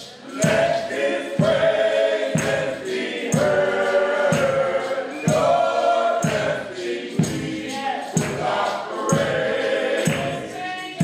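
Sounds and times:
male vocal group singing in harmony: 0:00.0 - 0:11.0
steady beat: 0:00.0 - 0:11.0.

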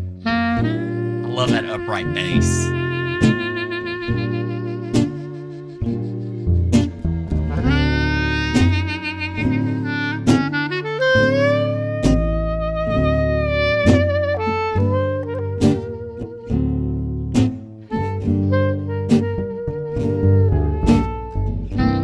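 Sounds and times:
acoustic guitar: 0:00.0 - 0:22.0
clarinet jazz melody: 0:00.2 - 0:22.0
plucked upright bass: 0:06.4 - 0:08.7.

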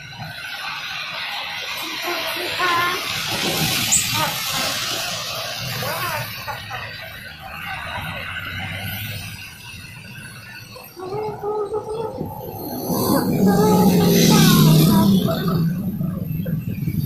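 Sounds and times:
passing traffic hum: 0:00.0 - 0:17.0
people talking: 0:01.8 - 0:03.2, 0:04.1 - 0:04.9, 0:05.7 - 0:08.2, 0:10.9 - 0:17.0.

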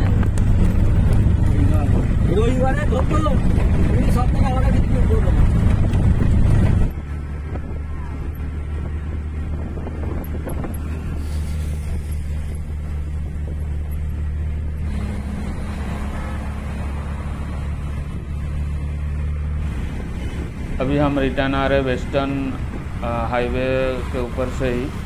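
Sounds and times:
road and wind noise: 0:00.0 - 0:25.0
vehicle engine droning: 0:00.0 - 0:25.0.

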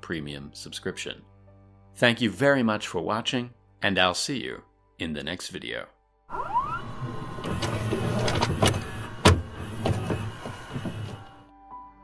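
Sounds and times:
mechanical whir: 0:06.3 - 0:11.4.

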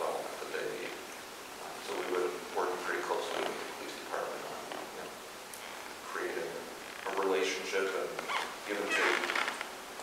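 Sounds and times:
person speaking: 0:06.1 - 0:09.6.

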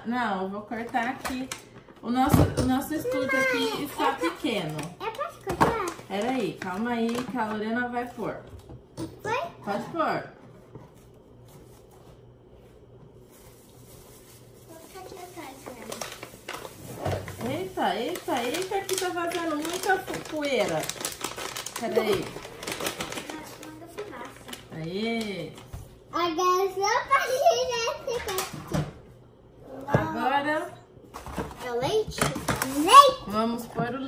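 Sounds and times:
child's voice: 0:03.0 - 0:06.1, 0:09.2 - 0:09.6, 0:14.7 - 0:16.2, 0:23.2 - 0:24.5, 0:26.1 - 0:28.7, 0:29.6 - 0:30.2, 0:31.6 - 0:33.3.

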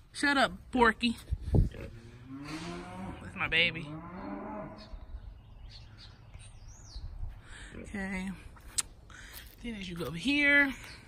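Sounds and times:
cow mooing: 0:01.8 - 0:04.9.

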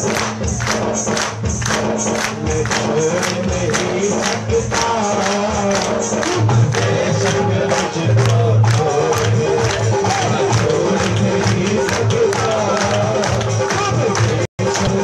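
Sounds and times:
low accompaniment: 0:00.0 - 0:15.0
percussion beat: 0:00.0 - 0:15.0
person singing devotional song: 0:02.0 - 0:15.0.

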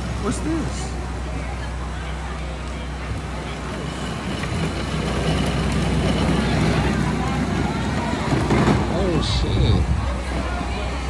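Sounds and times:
distant crowd chatter: 0:00.0 - 0:11.0
low motor hum: 0:00.0 - 0:11.0.

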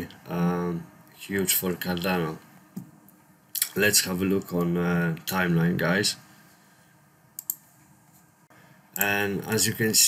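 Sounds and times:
low room hiss: 0:00.0 - 0:10.0
computer mouse clicks: 0:07.4 - 0:07.6.

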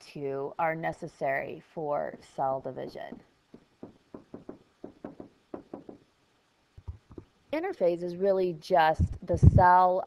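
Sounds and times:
stylus tapping on tablet screen: 0:03.0 - 0:06.0, 0:06.8 - 0:07.3.

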